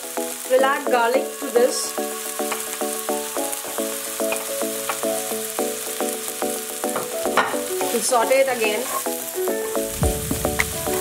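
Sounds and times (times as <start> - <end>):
background music: 0.0 - 11.0
onions sizzling in hot oil: 0.0 - 11.0.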